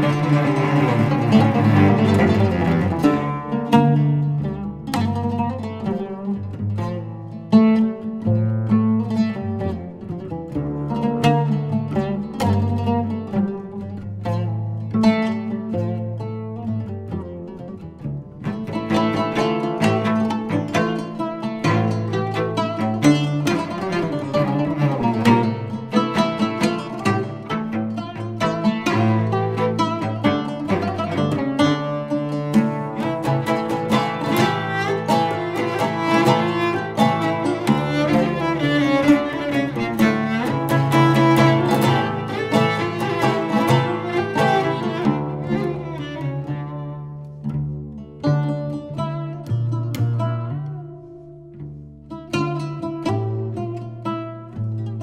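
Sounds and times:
bowed cello: 0.0s - 55.0s
plucked oud notes: 0.0s - 55.0s.

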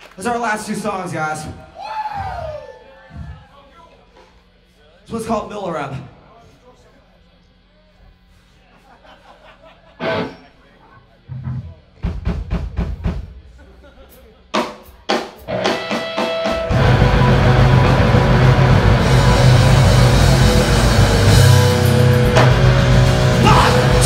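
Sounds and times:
rock band with distorted guitar: 10.0s - 10.6s, 14.1s - 24.0s
amplifier hum: 16.5s - 24.0s
sharp drum hits: 16.6s - 24.0s.

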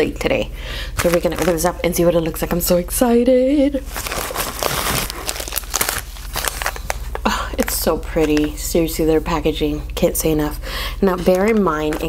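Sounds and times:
wrapping crinkling and rustling: 1.0s - 1.9s, 3.8s - 8.7s, 11.2s - 12.0s
envelope ripping: 3.8s - 7.2s.

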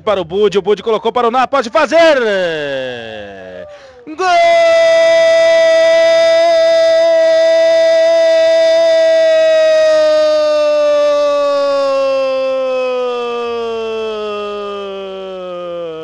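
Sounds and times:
commentator shouting goal: 0.2s - 10.4s.

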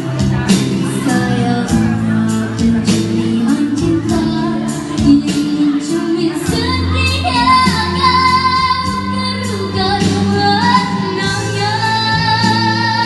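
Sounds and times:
instrumental accompaniment: 0.0s - 13.0s
woman singing into a microphone: 0.0s - 13.0s.

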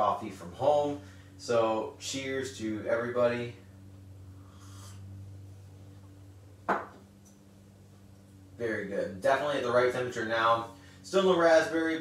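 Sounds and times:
steady low hum: 0.0s - 12.0s
glass knocking on desk: 6.7s - 7.0s.

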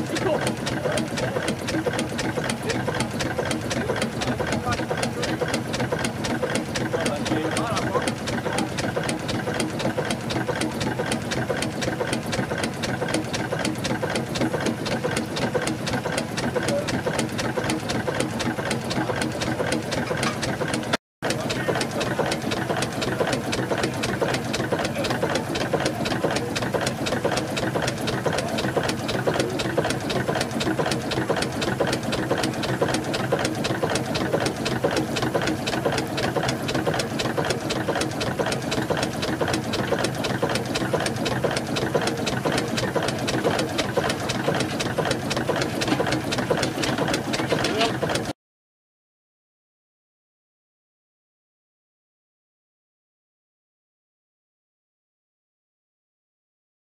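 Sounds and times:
steam engine clattering: 0.0s - 48.3s.

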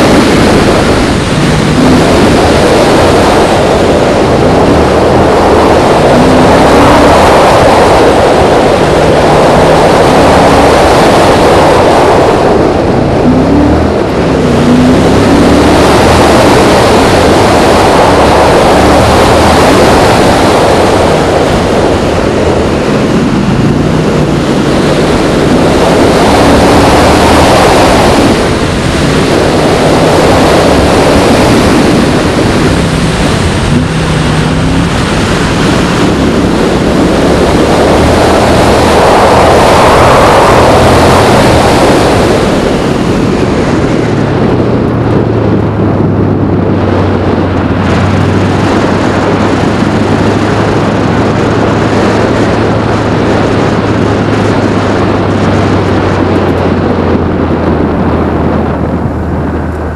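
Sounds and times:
car engine accelerating: 0.0s - 59.9s
road noise: 0.0s - 59.9s
wind noise on microphone: 0.0s - 59.9s.

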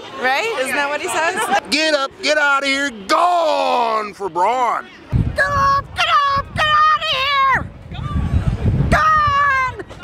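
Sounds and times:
woman shouting high-pitched: 5.4s - 7.7s, 8.9s - 9.9s.

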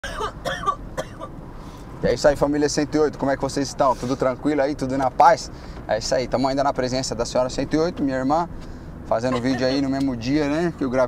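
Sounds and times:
person coughing: 0.0s - 1.3s.

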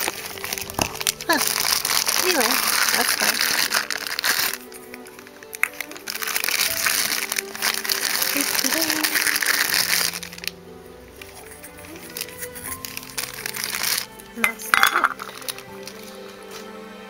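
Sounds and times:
plastic bags crinkling: 0.0s - 16.6s
soft background music: 0.0s - 17.0s.

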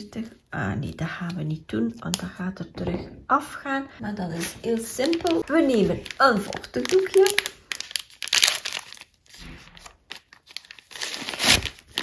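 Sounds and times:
plastic wipes pack crinkling: 4.2s - 12.0s.

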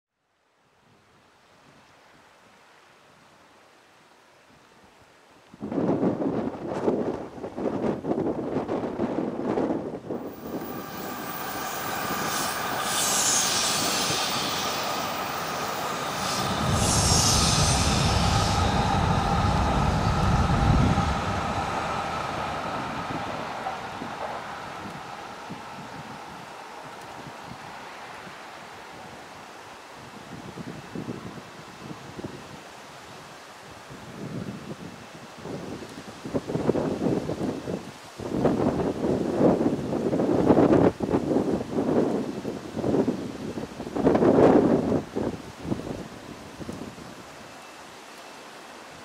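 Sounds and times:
high-speed train passing: 6.5s - 32.1s.

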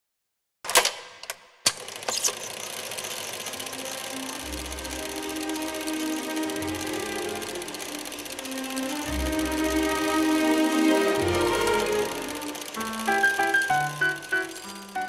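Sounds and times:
rapid mechanical clatter: 0.7s - 15.0s
intro music: 3.6s - 15.0s.

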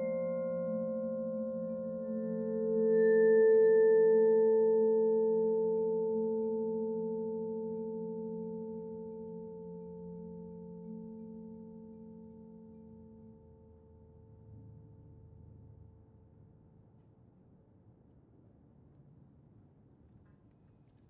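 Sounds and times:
low steady tone: 0.0s - 15.9s.

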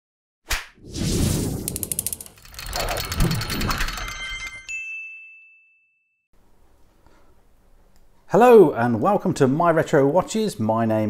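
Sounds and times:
rapid high ticks: 1.7s - 4.0s
bright bell-like ding: 4.5s - 6.2s.

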